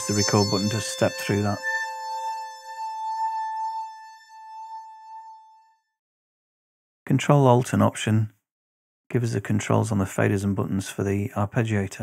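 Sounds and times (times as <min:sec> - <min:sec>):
synthesizer holding one note: 0:00.0 - 0:05.8.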